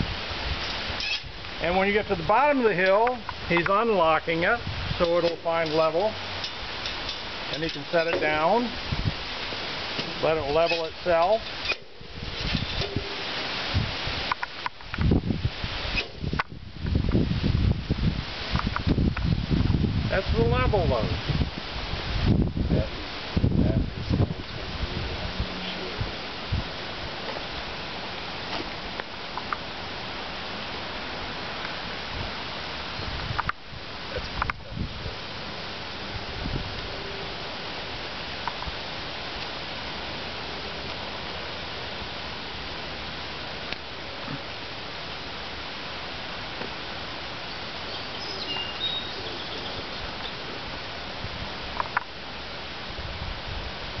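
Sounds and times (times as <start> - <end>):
rustling leaves: 0.0 - 54.0
wind: 0.0 - 54.0
faint high chirps: 47.8 - 50.4.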